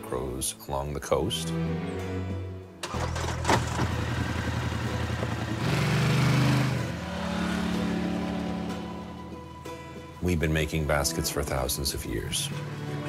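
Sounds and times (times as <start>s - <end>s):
utility vehicle engine running: 2.8s - 9.5s.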